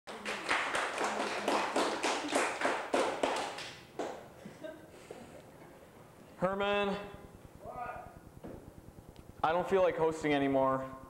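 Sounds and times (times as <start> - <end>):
audience clapping: 0.1 - 4.3.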